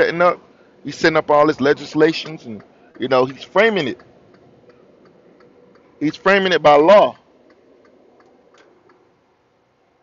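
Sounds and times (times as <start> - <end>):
man speaking: 0.0 - 4.0, 6.0 - 7.2
soft light ticks: 2.2 - 5.9, 7.2 - 9.0.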